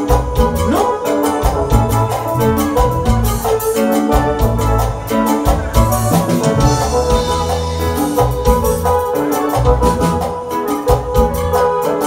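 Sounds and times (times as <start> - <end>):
live band music: 0.0 - 12.0
organ-toned electronic keyboard: 0.0 - 12.0.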